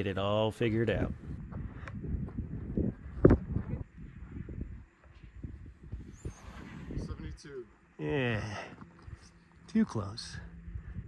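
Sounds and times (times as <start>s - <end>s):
wind buffeting microphone: 0.0s - 7.6s, 10.2s - 11.0s.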